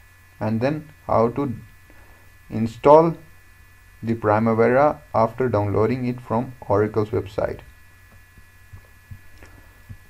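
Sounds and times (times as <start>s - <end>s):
faint high whine: 0.0s - 10.0s
low electrical hum: 0.0s - 10.0s
soft low thumps: 8.1s - 10.0s.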